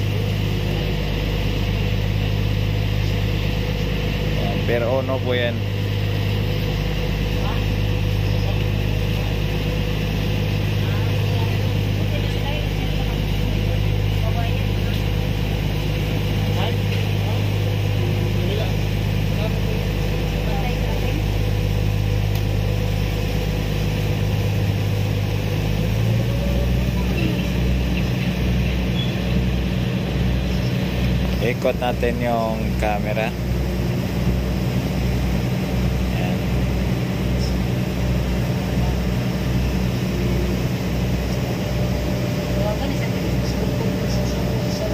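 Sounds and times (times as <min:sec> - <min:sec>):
broad noise wash: 0:00.0 - 0:44.9
ferry engines droning: 0:00.0 - 0:44.9.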